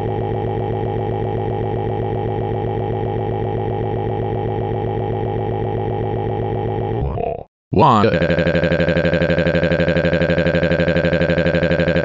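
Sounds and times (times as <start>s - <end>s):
synthetic voice stuttering: 6.6s - 12.0s.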